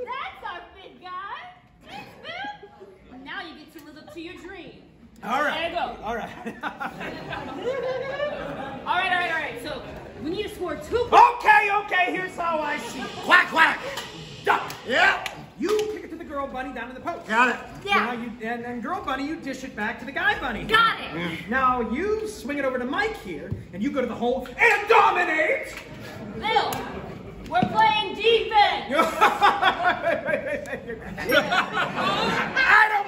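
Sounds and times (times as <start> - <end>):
man shouting loudly: 11.1 - 13.8, 24.6 - 25.7.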